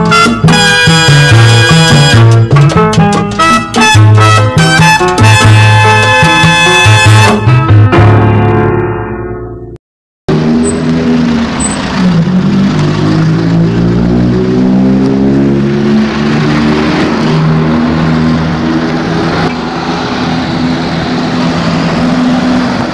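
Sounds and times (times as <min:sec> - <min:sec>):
road noise: 0:00.0 - 0:09.7, 0:10.3 - 0:22.9
vehicle engine running: 0:10.3 - 0:22.9.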